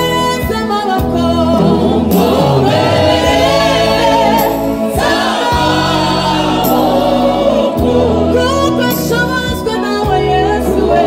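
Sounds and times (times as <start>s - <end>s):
group singing in harmony: 1.3s - 11.0s.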